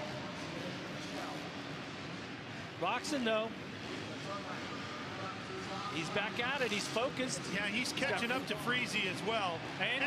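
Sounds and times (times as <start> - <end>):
arena crowd noise: 0.0 - 10.0
commentator speaking: 5.9 - 10.0.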